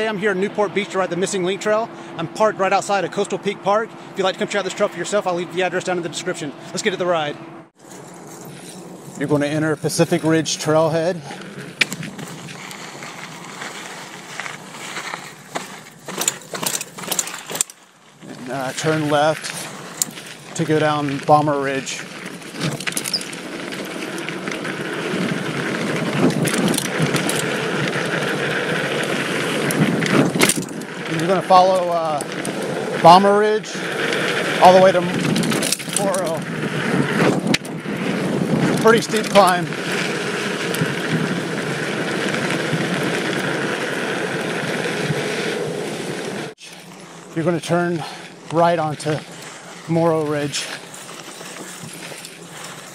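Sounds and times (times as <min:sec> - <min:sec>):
bike tyre noise on ground: 0:00.0 - 0:52.9
bike clicks and rattles: 0:07.8 - 0:52.9
wind on microphone: 0:24.1 - 0:31.4, 0:33.8 - 0:46.5.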